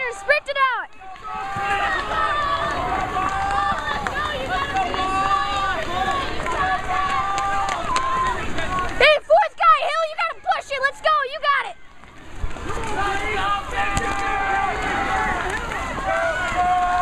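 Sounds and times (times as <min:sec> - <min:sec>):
spectators shouting and cheering: 0:00.0 - 0:17.0.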